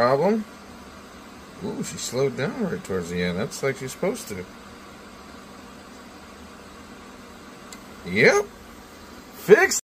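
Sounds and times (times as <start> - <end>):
three d printer fans whirring: 0.0 - 9.8.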